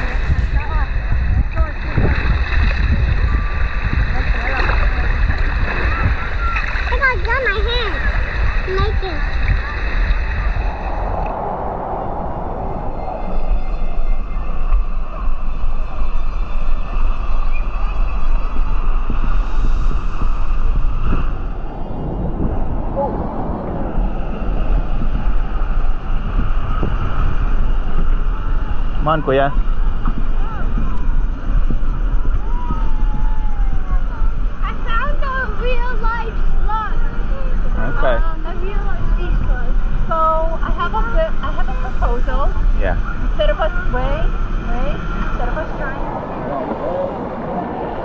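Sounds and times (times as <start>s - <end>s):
steady outdoor rush: 0.0s - 48.0s
wind rumbling on microphone: 0.0s - 48.0s.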